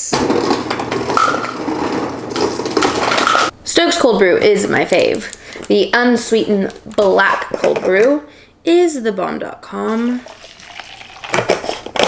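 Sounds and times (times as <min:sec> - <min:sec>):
ice cubes clattering into cup: 0:10.2 - 0:12.0.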